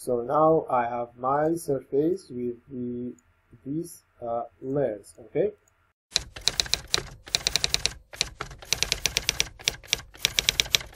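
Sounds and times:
typewriter key clacks: 0:06.2 - 0:10.9.

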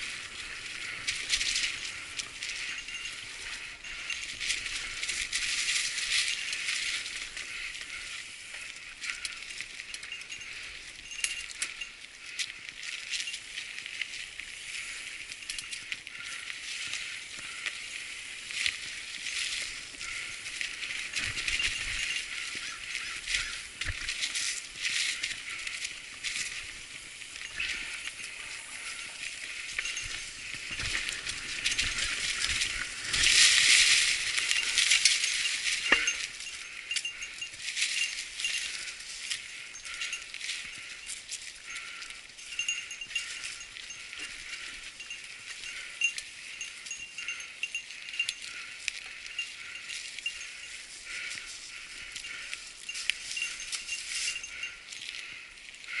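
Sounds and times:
bike chain and frame rattling: 0:00.0 - 0:56.0
bike tyres crackling through leaves: 0:00.0 - 0:56.0.

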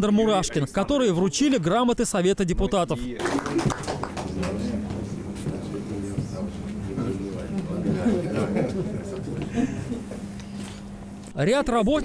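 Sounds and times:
people talking quietly: 0:03.2 - 0:11.5.

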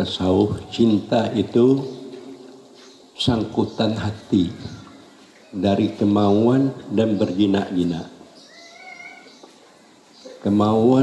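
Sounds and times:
faint high-pitched cry: 0:08.4 - 0:09.4.

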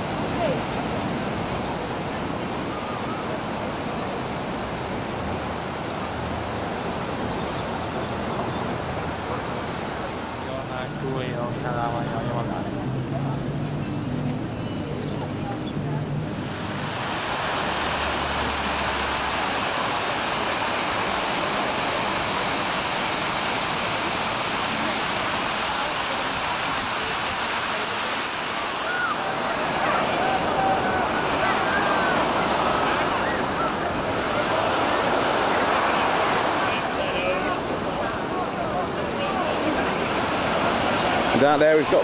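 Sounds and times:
voices: 0:09.4 - 0:16.6, 0:19.7 - 0:42.0
waterfall rushing splash: 0:16.2 - 0:42.0.

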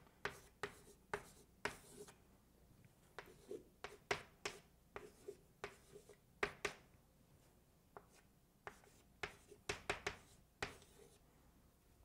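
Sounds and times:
chalk scratching on chalkboard: 0:00.2 - 0:02.2, 0:03.2 - 0:06.8, 0:08.0 - 0:11.2.

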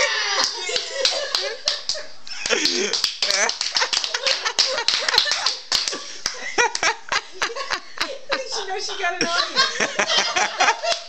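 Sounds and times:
sharp hand claps: 0:00.4 - 0:07.0.

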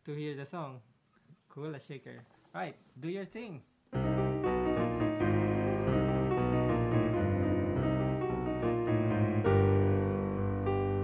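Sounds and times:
digital piano melody over chords: 0:04.0 - 0:11.0.

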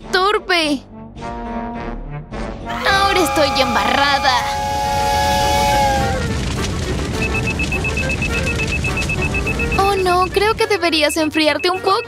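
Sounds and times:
smoke detector alarm beeping: 0:07.2 - 0:10.4, 0:11.1 - 0:12.0.

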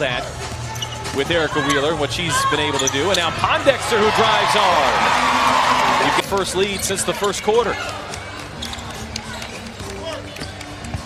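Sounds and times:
arena background music: 0:00.0 - 0:11.0
crowd noise: 0:00.0 - 0:11.0.

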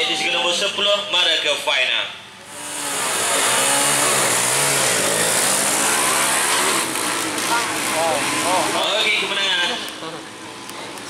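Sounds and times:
motorbike engines revving hard: 0:02.4 - 0:11.0.

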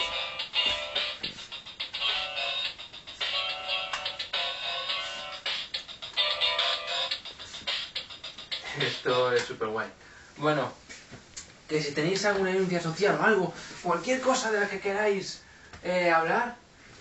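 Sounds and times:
tinny music with repeating beat: 0:00.0 - 0:09.7.

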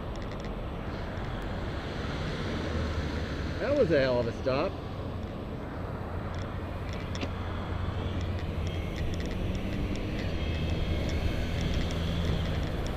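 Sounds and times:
road and traffic rumble: 0:00.0 - 0:12.9.

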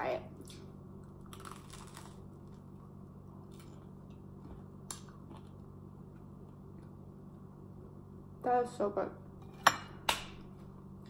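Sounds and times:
steady low hum: 0:00.0 - 0:11.0
chewing toast crunches: 0:00.5 - 0:05.7.

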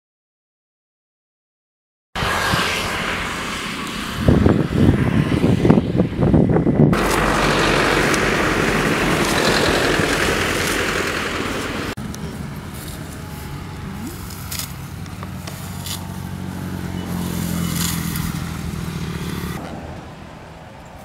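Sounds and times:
steady rushing noise: 0:02.2 - 0:21.0
wind buffeting microphone: 0:03.7 - 0:13.1.

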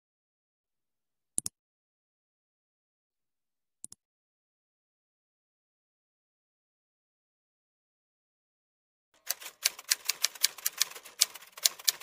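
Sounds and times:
typewriter key clicks: 0:09.3 - 0:12.0.

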